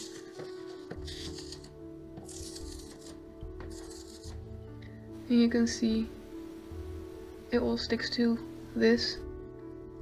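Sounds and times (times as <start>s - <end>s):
lint roller crackling: 0.0s - 4.5s
background music with held notes: 0.0s - 10.0s.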